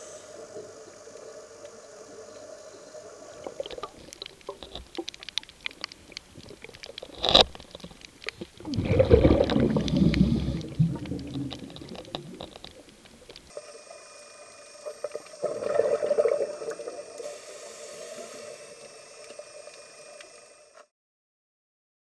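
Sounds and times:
faint steady hiss and hum: 0.0 - 20.9
underwater bubbles surging: 3.2 - 13.5, 14.8 - 17.3.

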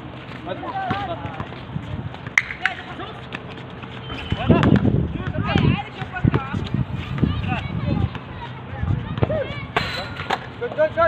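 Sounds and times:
players calling and shouting: 0.3 - 11.0.

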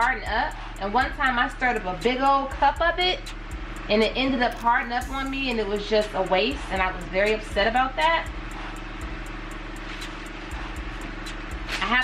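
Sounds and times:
electric fan running: 0.0 - 12.0.

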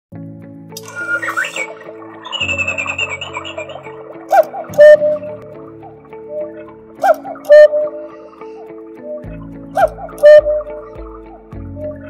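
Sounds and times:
background music with chirps: 0.2 - 12.0
cuckoo clock call: 0.8 - 5.4, 6.4 - 8.0, 9.0 - 10.8.

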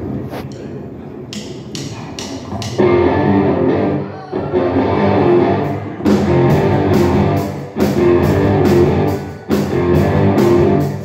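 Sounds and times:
drum stick count-in ticks: 1.3 - 2.9
rock band playing: 2.5 - 11.0.

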